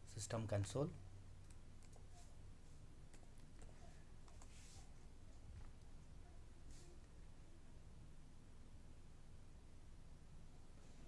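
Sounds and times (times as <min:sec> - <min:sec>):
mouse and keyboard clicks: 0:01.4 - 0:02.1.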